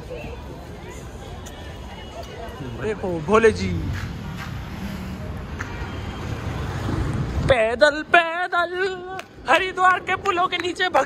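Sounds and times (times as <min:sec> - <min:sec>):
road traffic noise: 0:00.0 - 0:11.0
car driving past: 0:03.2 - 0:07.3.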